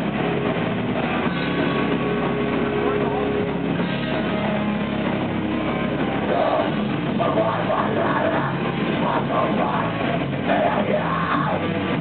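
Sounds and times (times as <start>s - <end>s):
distorted electric guitar droning: 0.0s - 12.0s
drums: 0.0s - 12.0s
rock band playing live: 0.0s - 12.0s.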